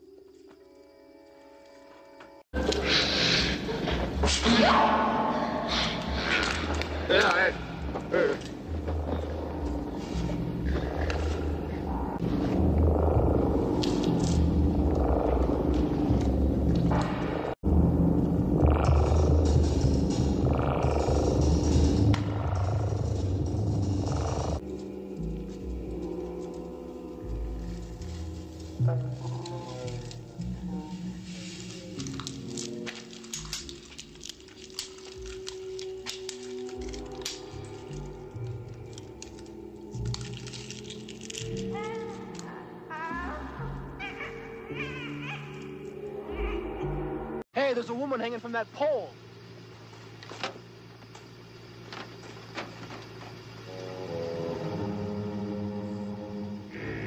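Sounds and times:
sustained music tones: 0:03.6 - 0:57.0
shrill creature cries: 0:42.9 - 0:46.8.

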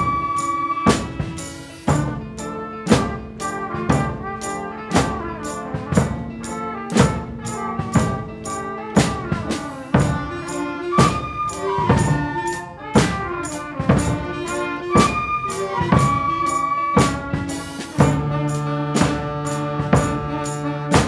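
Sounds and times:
concert band playing rock: 0:00.0 - 0:21.0
heavy drum hits: 0:00.0 - 0:21.0.

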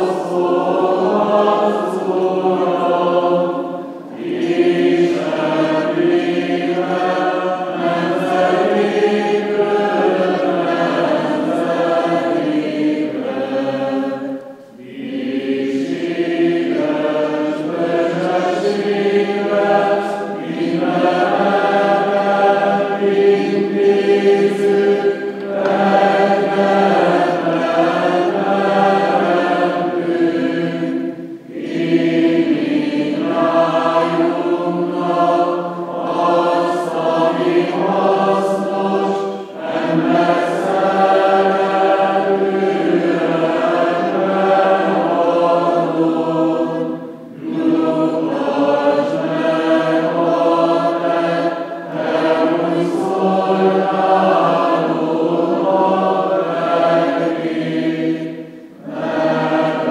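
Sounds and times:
choir chanting a cappella: 0:00.0 - 0:59.9.

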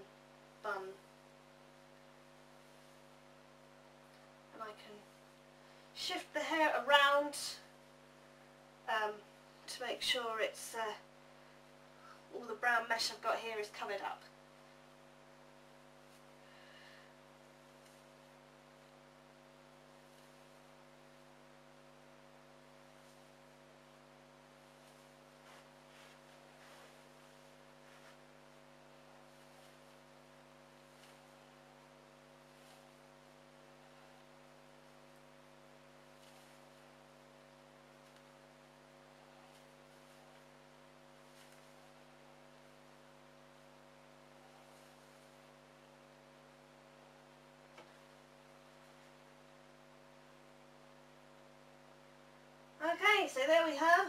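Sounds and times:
steady electrical hum: 0:00.0 - 0:54.0
hands rustling hair: 0:22.7 - 0:45.8.

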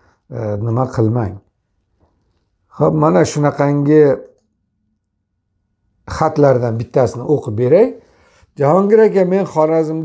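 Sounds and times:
man speaking: 0:00.3 - 0:01.5, 0:02.7 - 0:04.4, 0:06.0 - 0:10.0.

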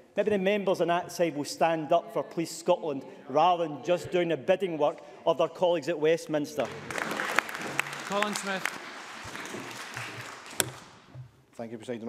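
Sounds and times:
scattered applause: 0:06.6 - 0:11.1.

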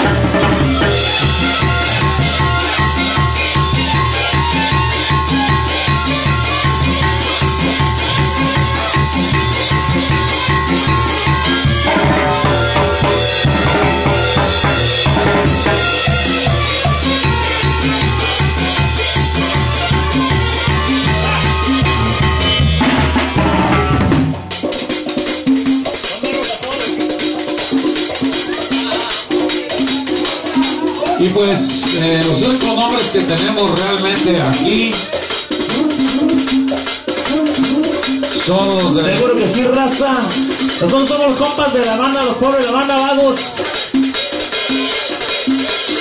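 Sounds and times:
low bass line: 0:00.0 - 0:24.4
cymbals: 0:00.0 - 0:46.0
live brass band music: 0:00.0 - 0:46.0.

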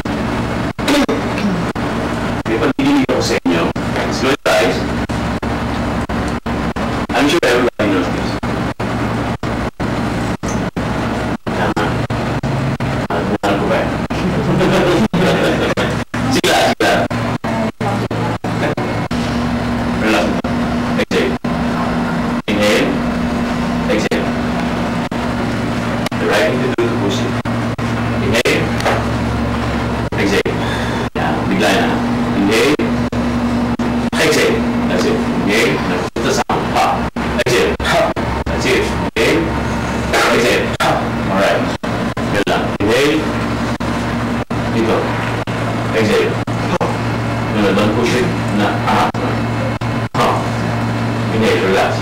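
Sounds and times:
indistinct voices in room: 0:00.0 - 0:52.0
steady low hum: 0:00.0 - 0:52.0.

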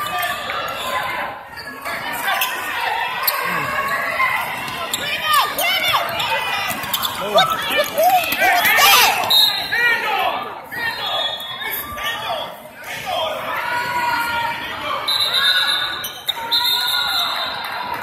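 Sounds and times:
voices and calls: 0:00.3 - 0:12.0
sneakers squeaking on court: 0:01.6 - 0:09.8.

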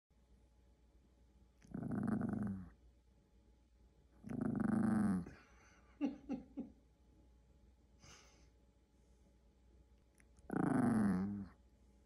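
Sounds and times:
small dog growling: 0:01.6 - 0:02.8, 0:04.2 - 0:05.4, 0:10.4 - 0:11.6.

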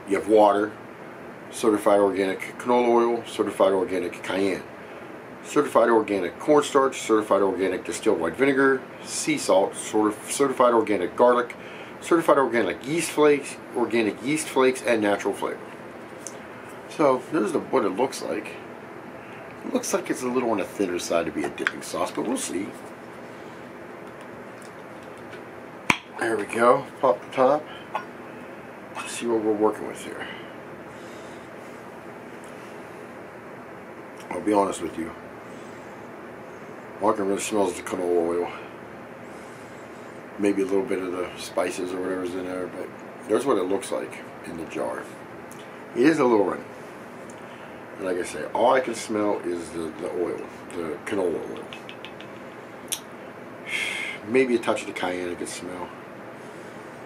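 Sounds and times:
person sniffing: 0:53.7 - 0:54.2.

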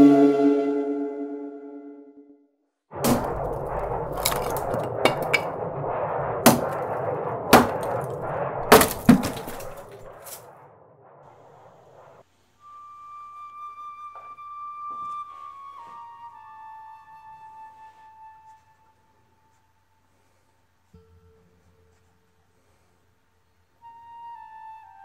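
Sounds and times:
held flute note: 0:00.0 - 0:02.4, 0:12.6 - 0:19.8, 0:23.8 - 0:25.0
rushing noise: 0:02.9 - 0:12.3
sharp cracks and knocks: 0:03.0 - 0:10.6.

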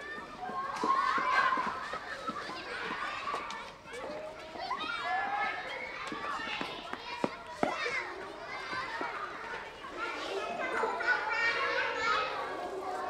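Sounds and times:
children shouting and chattering: 0:00.0 - 0:13.0.

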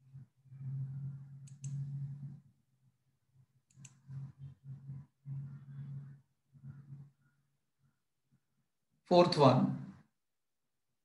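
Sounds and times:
low hum: 0:00.0 - 0:08.6
computer mouse double clicks: 0:01.4 - 0:01.8.

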